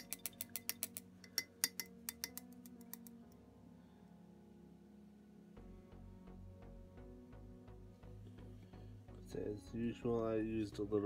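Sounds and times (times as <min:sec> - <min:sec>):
paintbrush tapping water pot: 0:00.0 - 0:03.2.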